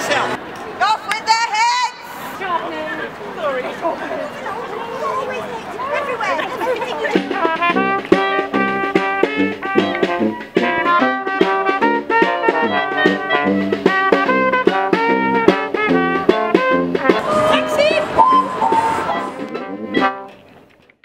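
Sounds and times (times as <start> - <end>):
brass band playing lively tune: 4.0 - 20.5.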